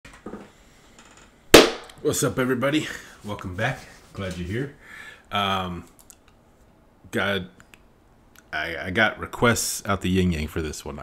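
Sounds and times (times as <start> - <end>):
hand clap: 1.6 - 2.0.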